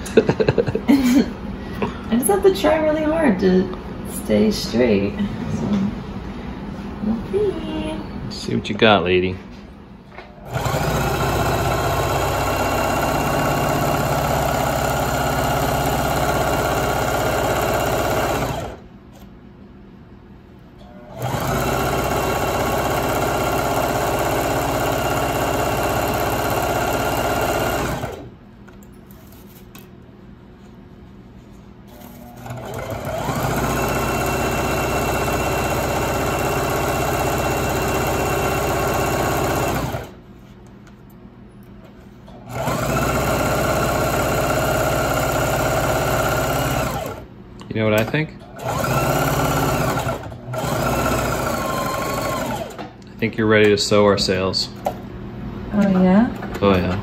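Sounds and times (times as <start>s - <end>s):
electric sewing machine stitching: 10.4s - 18.8s, 20.8s - 28.3s, 31.9s - 40.2s, 42.3s - 47.3s, 48.0s - 52.9s.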